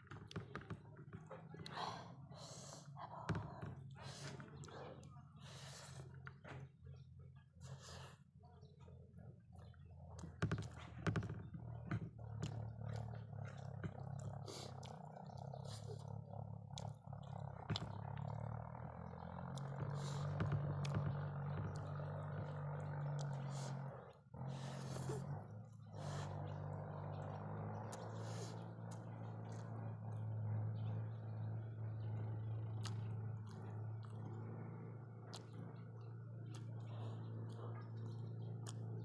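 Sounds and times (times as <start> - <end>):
steady low hum: 0.0 - 39.0
chewing and wet mouth clicks: 12.4 - 18.5, 32.8 - 34.5, 35.1 - 39.0.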